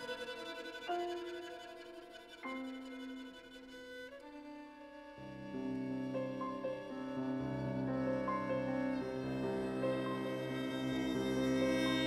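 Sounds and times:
piano: 0.0 - 12.0
violin: 0.0 - 12.0.

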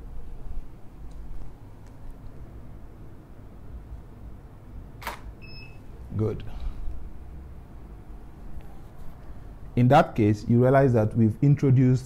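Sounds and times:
camera shutter click: 5.0 - 5.3.

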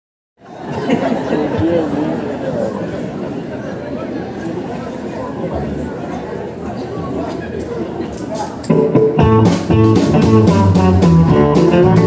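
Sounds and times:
crowd chatter: 0.4 - 12.0
drums: 8.4 - 12.0
bass guitar: 8.7 - 12.0
electric guitar: 8.7 - 12.0.

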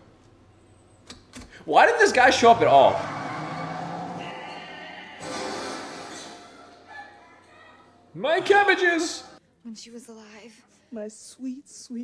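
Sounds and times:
truck tires screeching: 1.7 - 7.4
film music: 2.3 - 9.4.

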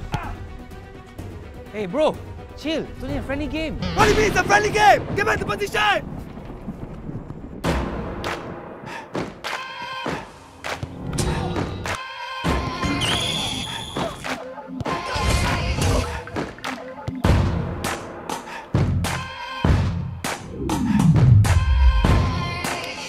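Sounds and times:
background music: 0.0 - 5.5, 7.6 - 23.0.

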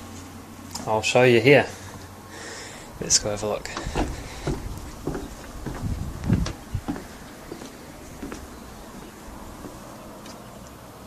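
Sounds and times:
footsteps on wooden boards: 3.0 - 10.3
handheld camera handling thuds: 3.8 - 7.0.

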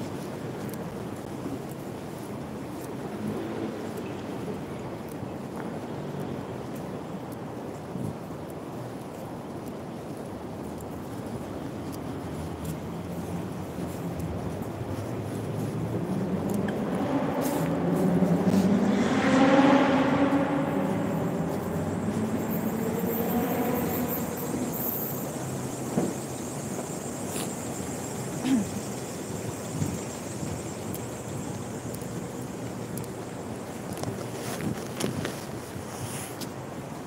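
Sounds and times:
steady traffic noise: 0.0 - 37.0
vehicle engine passing: 15.2 - 33.0.

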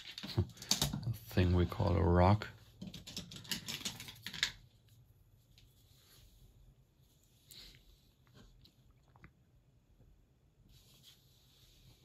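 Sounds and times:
painting supplies clicking and tapping: 0.0 - 1.2, 2.7 - 4.7.

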